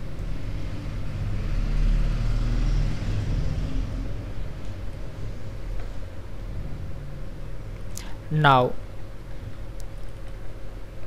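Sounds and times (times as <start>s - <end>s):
low rumbling: 0.0s - 9.6s.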